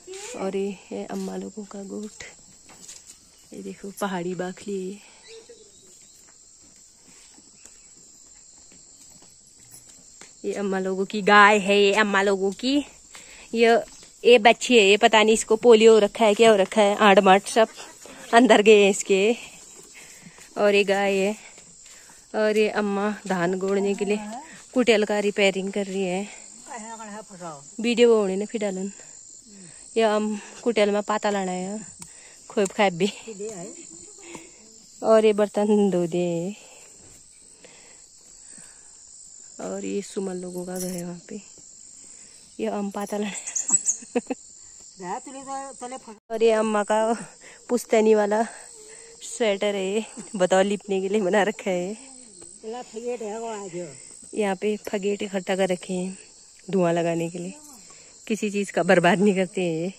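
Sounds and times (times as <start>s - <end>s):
woman's voice: 0.0s - 2.4s, 3.5s - 5.5s, 10.4s - 19.6s, 20.5s - 21.6s, 22.3s - 29.0s, 29.8s - 36.8s, 39.6s - 41.5s, 42.6s - 44.4s, 45.0s - 59.9s
high-pitched insect chorus: 0.0s - 59.9s.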